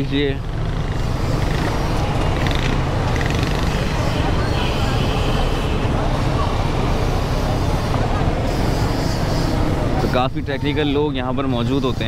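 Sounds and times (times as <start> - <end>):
motorcycle engines rumbling: 0.0 - 12.0.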